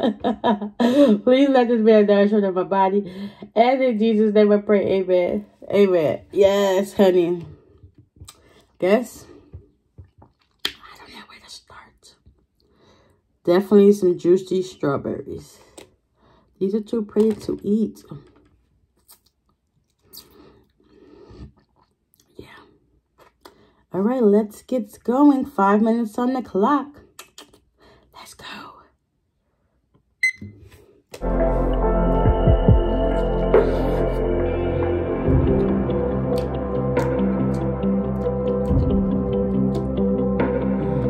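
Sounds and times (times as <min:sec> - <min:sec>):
woman whispering: 0:10.8 - 0:12.2, 0:22.3 - 0:22.8, 0:28.1 - 0:29.0.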